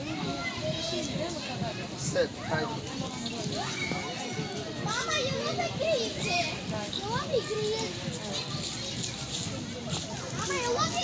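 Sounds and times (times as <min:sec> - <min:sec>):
young children talking and calling: 0:00.0 - 0:11.0.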